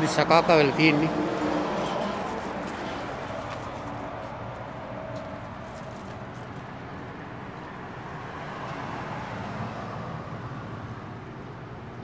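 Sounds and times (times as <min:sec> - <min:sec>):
vehicle passing: 0:00.0 - 0:11.2
road traffic noise: 0:00.0 - 0:12.0.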